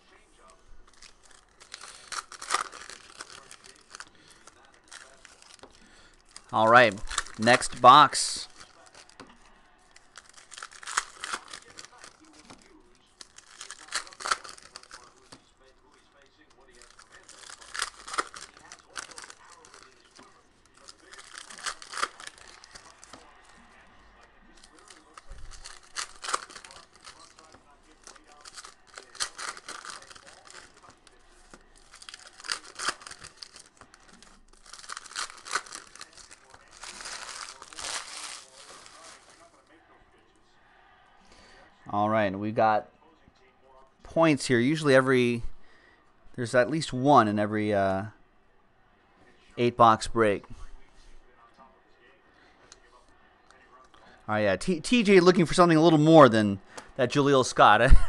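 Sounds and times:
foil wrappers torn and crinkled: 0.8 - 9.2, 9.8 - 23.5, 24.5 - 39.6.

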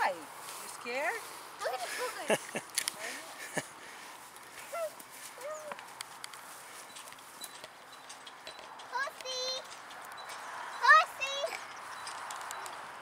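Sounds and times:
pony hooves clopping: 5.4 - 10.6.

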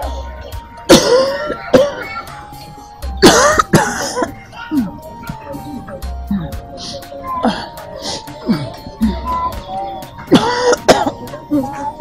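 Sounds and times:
woman coughing hard: 0.9 - 2.2, 3.2 - 4.9, 10.3 - 11.4.

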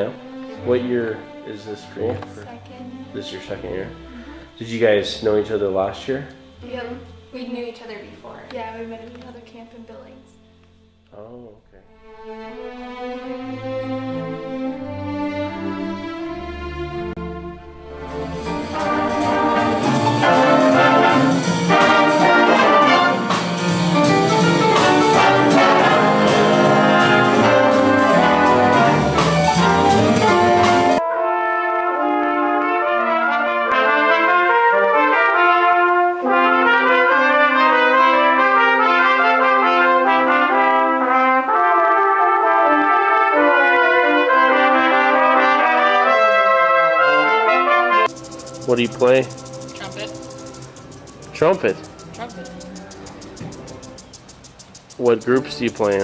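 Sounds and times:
small brass ensemble playing: 0.0 - 8.4, 9.8 - 54.1, 55.0 - 56.0
big band brass playing: 11.7 - 54.0, 55.0 - 56.0.

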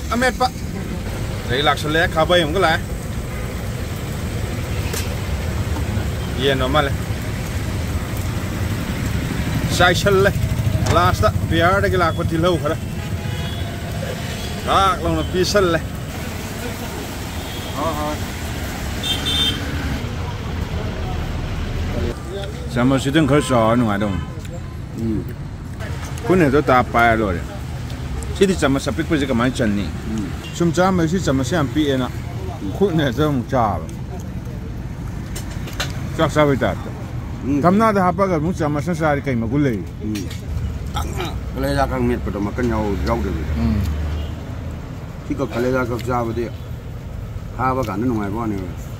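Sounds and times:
voices talking: 0.0 - 35.0, 36.1 - 48.9
road traffic rumble: 0.0 - 48.9.

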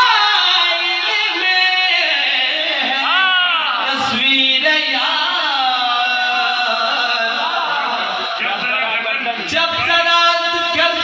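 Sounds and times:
man singing into a microphone: 0.0 - 11.0.

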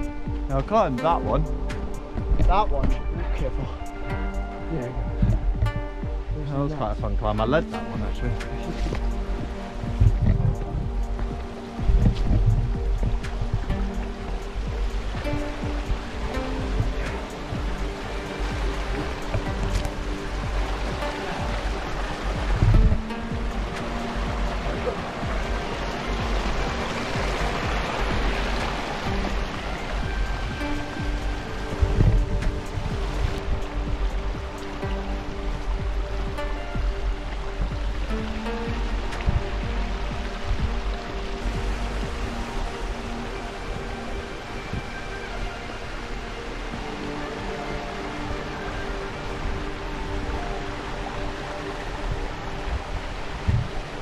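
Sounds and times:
steady low rumble: 0.0 - 45.1
music of held notes: 0.0 - 54.0.

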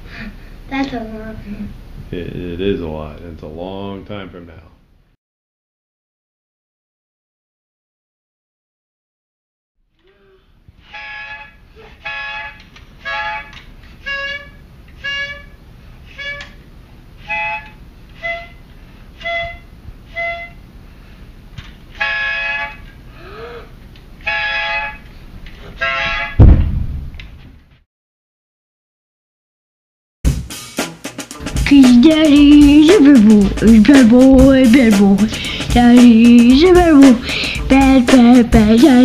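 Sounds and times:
toy plastic trumpet toots: 10.8 - 16.6, 17.2 - 18.6, 19.2 - 20.6, 21.9 - 23.0, 24.2 - 25.1, 25.8 - 26.4
loud thump: 26.3 - 27.4.

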